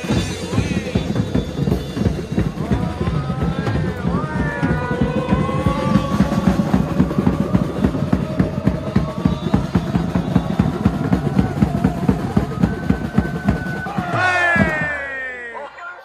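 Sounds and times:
bass drums beating: 0:00.0 - 0:15.2
crowd singing a chant: 0:00.0 - 0:16.0.

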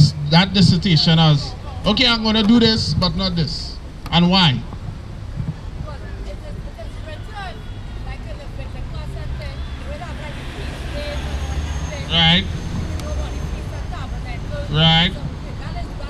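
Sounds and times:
faint voices: 0:00.0 - 0:16.0
street traffic rumbling: 0:00.0 - 0:16.0
vehicle horn toots: 0:06.5 - 0:14.0.

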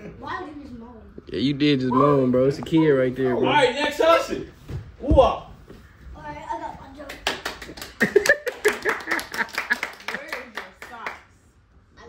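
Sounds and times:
small group clapping: 0:06.9 - 0:11.4
people laughing: 0:08.0 - 0:10.4.

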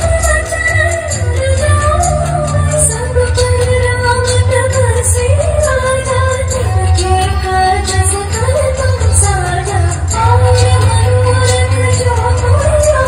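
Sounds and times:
person singing a wavering melody: 0:00.0 - 0:13.0
low bass: 0:01.1 - 0:07.4.

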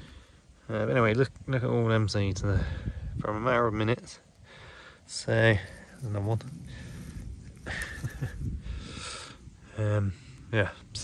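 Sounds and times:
dry leaves rustling and crackling: 0:05.6 - 0:08.4.

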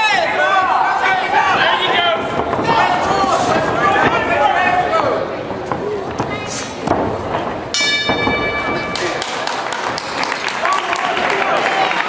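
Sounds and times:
hall background noise: 0:00.0 - 0:12.0
round bell ringing tone: 0:07.7 - 0:09.2.

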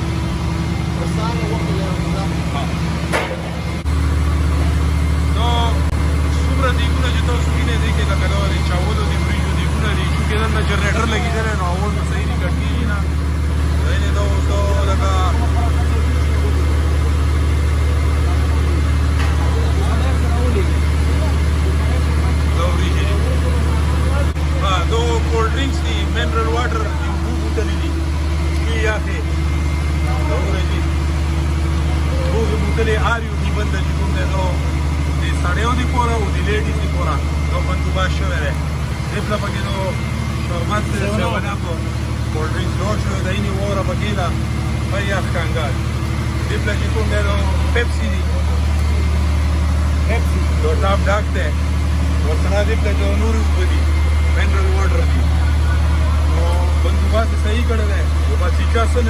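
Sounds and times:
chatter of many voices: 0:00.0 - 0:59.0
engine droning: 0:00.0 - 0:59.0.

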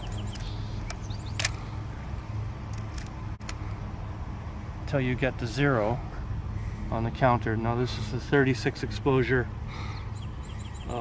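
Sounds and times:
film camera advance clicks: 0:00.3 - 0:01.6.

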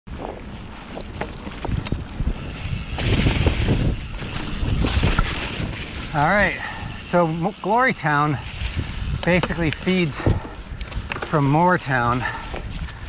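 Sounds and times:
wind on microphone: 0:00.1 - 0:07.4, 0:08.0 - 0:13.0
bike clicks and rattles: 0:00.1 - 0:13.0
bike tyres on leaves and dirt: 0:00.1 - 0:13.0.

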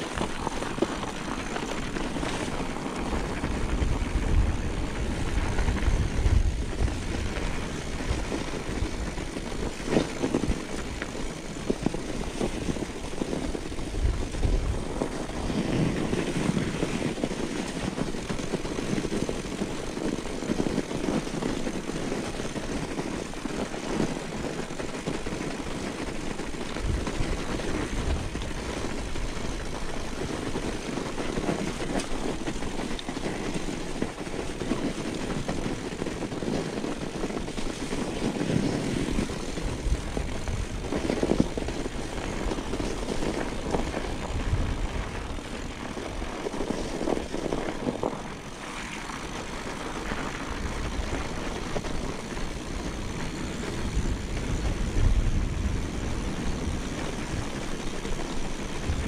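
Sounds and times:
bike tyres rolling over snow: 0:00.0 - 0:59.0.

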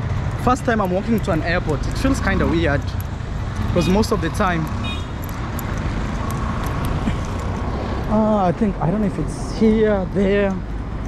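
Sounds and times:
traffic rumble of passing cars: 0:00.0 - 0:11.0.

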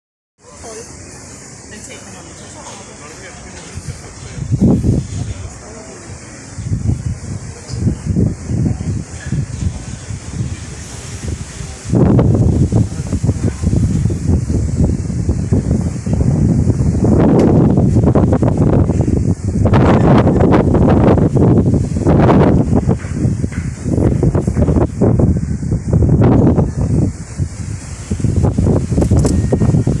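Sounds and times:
wind buffeting microphone: 0:00.5 - 0:30.0.

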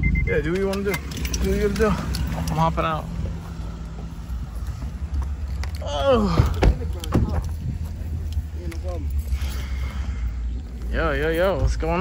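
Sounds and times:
wind rumble on microphone: 0:07.1 - 0:08.6.

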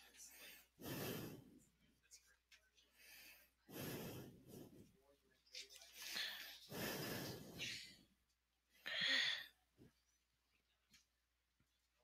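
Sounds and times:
faint indistinct voices: 0:00.0 - 0:08.1.

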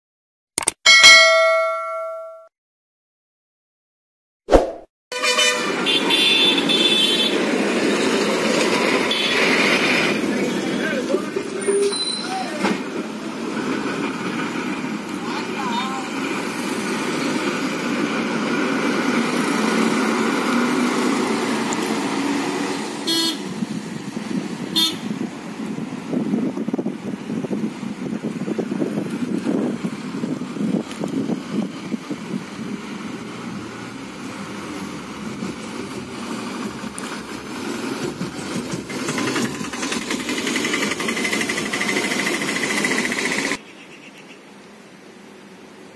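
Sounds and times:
sharp click: 0:00.6 - 0:00.8
vehicle horn: 0:05.1 - 0:07.4, 0:09.1 - 0:09.6, 0:23.1 - 0:23.5, 0:24.8 - 0:25.1
bus engine running: 0:05.6 - 0:43.6.

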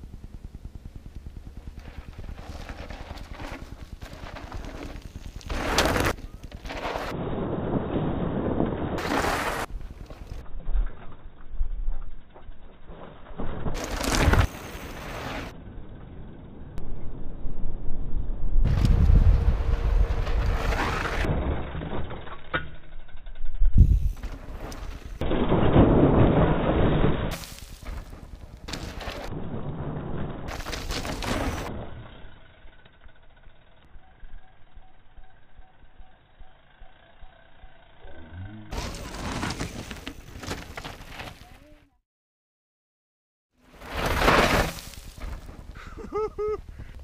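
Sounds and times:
bike tyres crunching on gravel: 0:00.7 - 0:11.4, 0:13.4 - 0:15.5, 0:23.9 - 0:31.9, 0:38.7 - 0:41.8, 0:43.6 - 0:46.8
bike landing thud: 0:43.8 - 0:45.8.

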